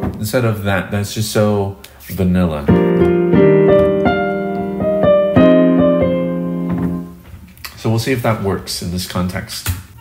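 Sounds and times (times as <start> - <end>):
electronic keyboard piano chords: 2.7 - 7.2.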